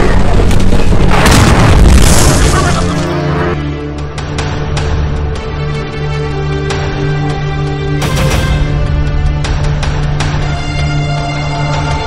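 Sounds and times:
electric shock crackling buzz: 0.0s - 3.7s
deep rumble: 0.0s - 5.9s.

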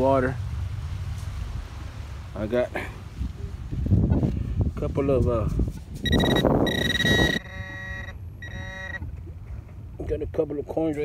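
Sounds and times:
pinpointer steady high beep: 6.0s - 9.0s
short buzzy beeps: 6.0s - 9.1s.

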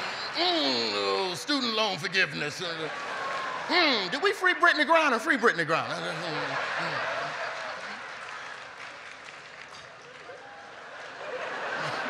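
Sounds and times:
large audience applauding: 2.8s - 4.5s, 6.1s - 12.0s.

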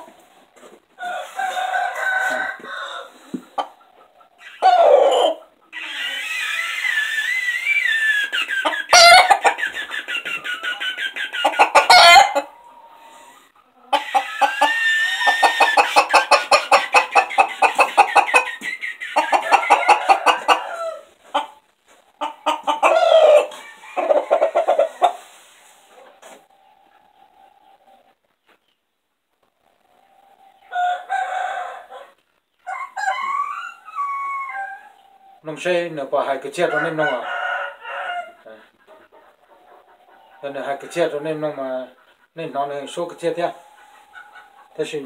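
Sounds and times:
rooster crowing: 1.0s - 3.2s, 19.4s - 21.1s, 22.9s - 25.2s, 30.7s - 32.1s, 32.7s - 34.9s, 36.6s - 38.4s.

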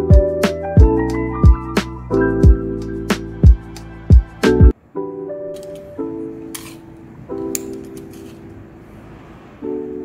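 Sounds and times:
soft keyboard chords: 0.0s - 10.0s.

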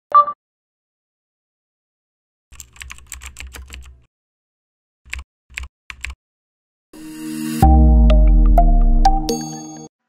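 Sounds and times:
computer keyboard typing: 2.6s - 4.0s, 5.1s - 6.2s.

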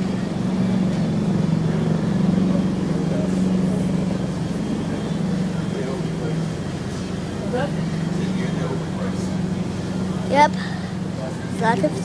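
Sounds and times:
grocery store background noise: 0.0s - 12.0s
steady low hum: 0.0s - 12.0s.

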